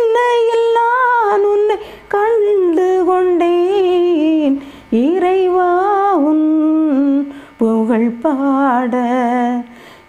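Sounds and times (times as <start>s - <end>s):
woman singing unaccompanied: 0.0s - 9.8s
woman breathing: 1.8s - 2.1s, 4.6s - 4.9s, 7.3s - 7.6s, 9.7s - 10.0s.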